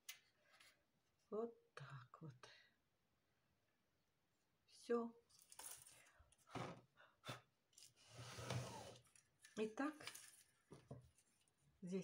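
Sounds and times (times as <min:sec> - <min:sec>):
ribbon and wire rustling: 0:09.0 - 0:12.0.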